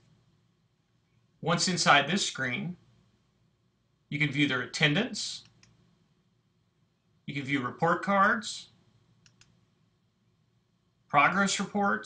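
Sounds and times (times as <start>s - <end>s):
computer mouse clicking: 5.4s - 5.8s, 9.2s - 9.6s.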